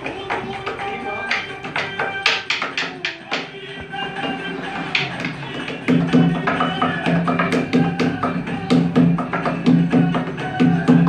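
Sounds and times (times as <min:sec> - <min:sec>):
hands drumming on wooden table: 0:00.2 - 0:03.5.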